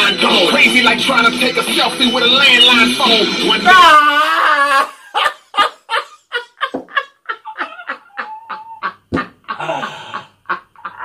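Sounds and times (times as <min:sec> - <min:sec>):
men laughing hard: 0:03.7 - 0:11.0.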